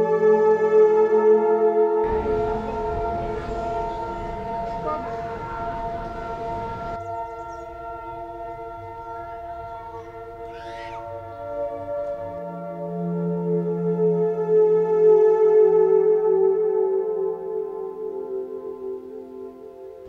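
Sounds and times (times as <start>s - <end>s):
ambient music with sustained tones: 0.0s - 20.0s
rushing noise: 2.1s - 8.4s.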